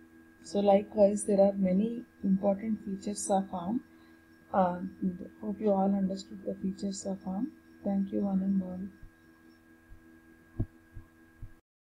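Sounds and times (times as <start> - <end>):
faint steady hum: 0.0 - 11.6
soft low thumps: 10.6 - 11.6.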